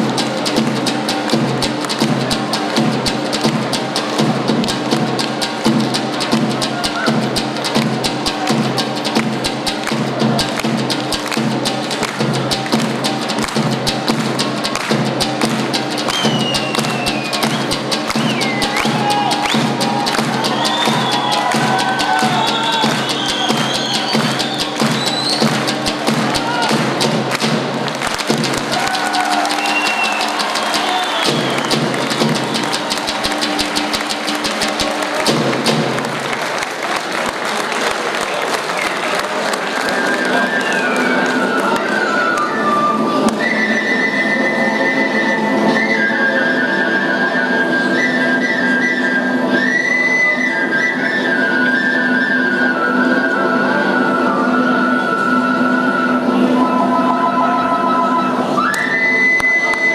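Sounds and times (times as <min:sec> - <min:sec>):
high wandering melody: 0:00.0 - 0:36.6
large drum fast rhythm: 0:00.0 - 0:37.3.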